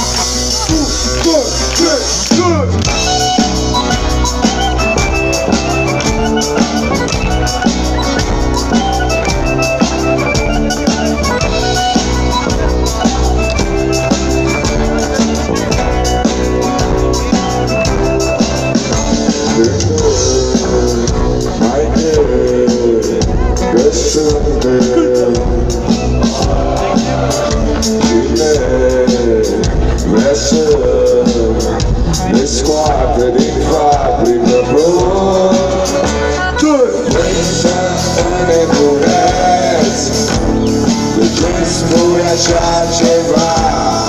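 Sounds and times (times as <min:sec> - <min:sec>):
repeating melodic riff: 0:00.0 - 0:22.1
bass guitar: 0:00.0 - 0:44.0
guitar: 0:00.0 - 0:44.0
live band music over loudspeakers: 0:00.0 - 0:44.0
steady drum beat: 0:00.0 - 0:44.0
person singing: 0:02.3 - 0:44.0.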